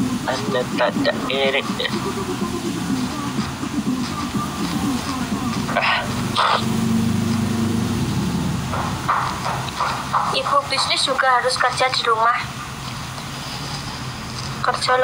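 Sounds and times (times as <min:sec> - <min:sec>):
muffled talking: 0:00.2 - 0:06.8, 0:10.2 - 0:12.6.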